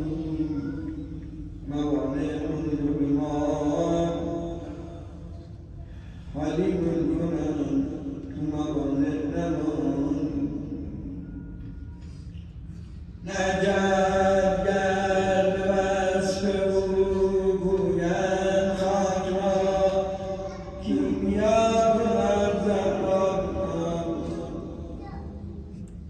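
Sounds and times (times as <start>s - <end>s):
man chanting religious recitation: 0.0s - 12.3s, 13.0s - 26.0s.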